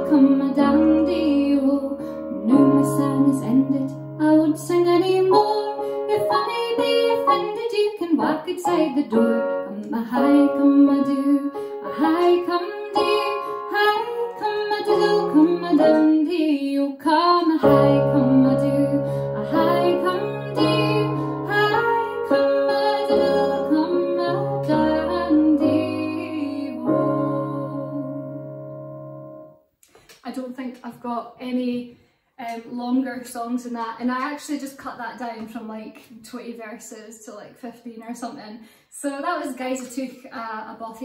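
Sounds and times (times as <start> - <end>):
electronic keyboard chords: 0.0 - 16.4, 17.6 - 29.7
woman singing: 0.0 - 28.4.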